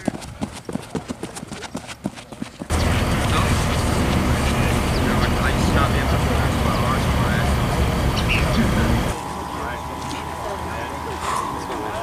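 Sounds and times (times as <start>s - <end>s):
voices calling out: 2.6s - 12.0s.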